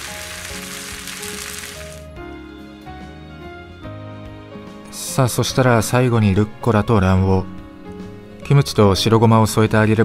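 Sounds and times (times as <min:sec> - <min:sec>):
rice sizzling in a pan: 0:00.0 - 0:02.1
soft background music: 0:00.0 - 0:10.0.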